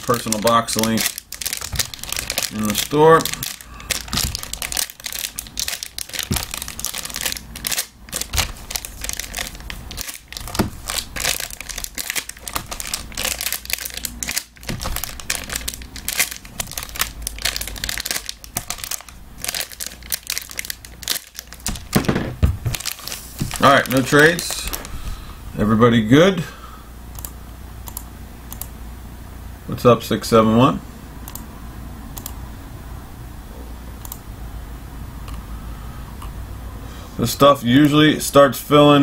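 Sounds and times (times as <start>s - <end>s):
wrapper tearing: 0.0s - 24.9s
foil wrappers crinkling: 0.0s - 25.2s.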